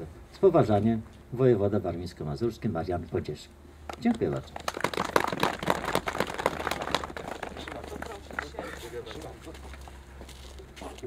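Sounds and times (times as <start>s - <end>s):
audience applauding: 3.9s - 8.8s.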